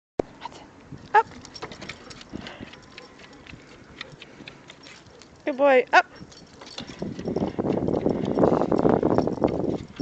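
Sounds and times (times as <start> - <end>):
dog claws tapping on paving: 1.2 - 5.5, 6.4 - 10.0.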